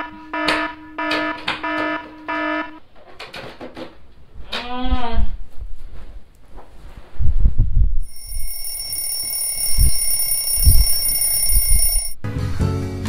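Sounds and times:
phone alarm ringing: 8.0 - 12.2
music: 12.2 - 13.0.

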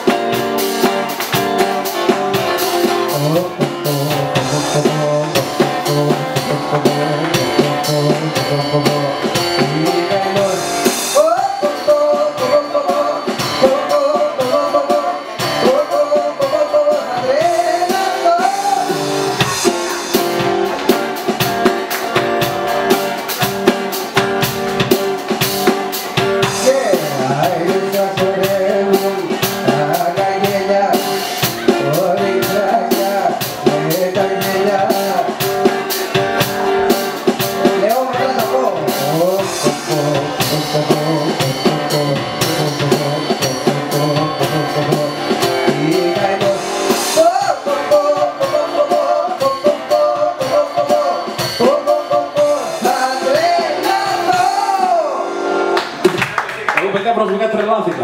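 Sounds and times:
steady beat: 0.0 - 58.0
man singing into a microphone: 2.0 - 19.8, 26.4 - 36.0, 37.6 - 55.4.

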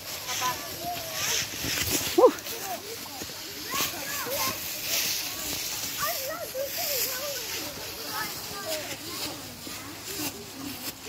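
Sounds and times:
children chattering: 0.0 - 11.0
footsteps on dry leaves: 0.0 - 11.0.

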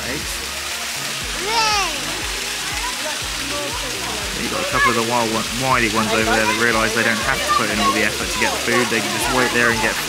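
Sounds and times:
background music: 0.0 - 10.0
water splashing and running: 0.0 - 10.0.

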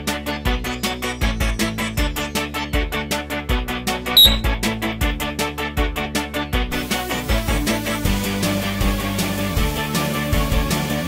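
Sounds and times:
brief high tone: 4.2 - 4.5.

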